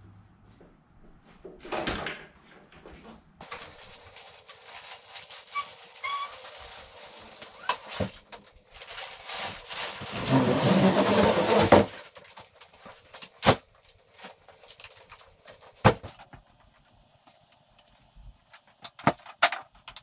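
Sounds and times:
plastic wrap rustling: 0:03.4 - 0:20.0
short squeak: 0:05.5 - 0:06.4
kayak hull scraping: 0:10.0 - 0:11.9.

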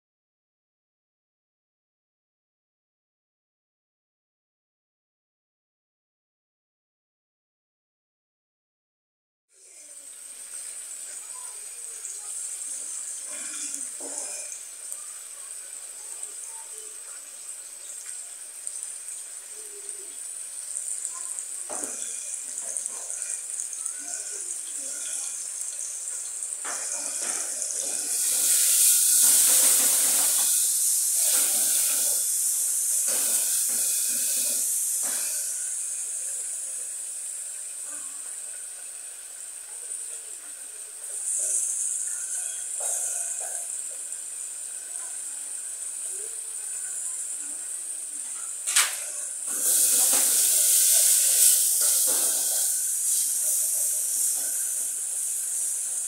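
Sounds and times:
chicken sizzling in hot oil: 0:09.5 - 0:56.0.

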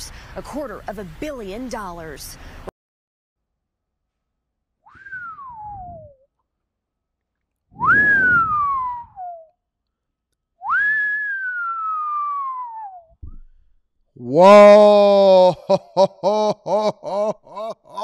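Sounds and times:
person whistling falling whistles: 0:04.8 - 0:06.3, 0:07.7 - 0:09.6, 0:10.6 - 0:13.6.

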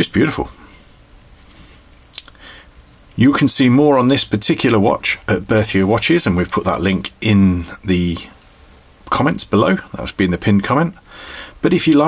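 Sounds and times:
light handling rustling: 0:00.6 - 0:12.0
small clicks: 0:01.4 - 0:03.4.

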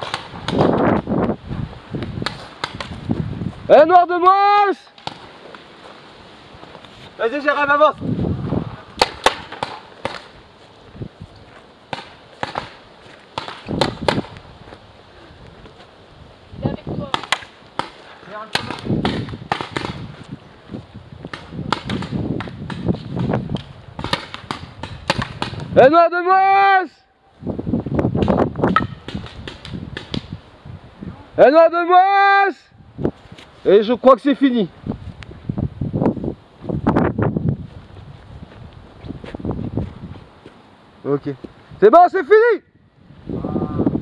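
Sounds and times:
paintball markers firing: 0:02.2 - 0:03.0, 0:09.0 - 0:10.4, 0:11.9 - 0:12.8, 0:13.4 - 0:14.4, 0:17.1 - 0:20.0, 0:21.3 - 0:23.3, 0:24.0 - 0:25.7.

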